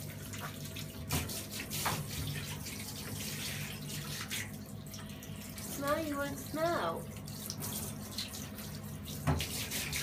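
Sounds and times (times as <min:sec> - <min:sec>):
shower water spraying: 0:05.2 - 0:10.0.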